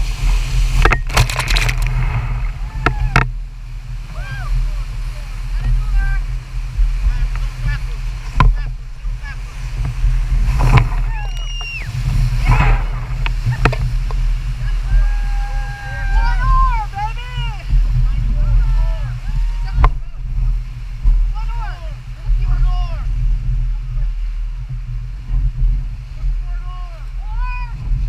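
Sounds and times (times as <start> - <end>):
waves splashing over boat: 0.0 - 28.0
whitewater rushing: 0.0 - 28.0
people shouting: 2.6 - 3.2, 4.1 - 4.6, 14.7 - 17.7, 18.4 - 20.2.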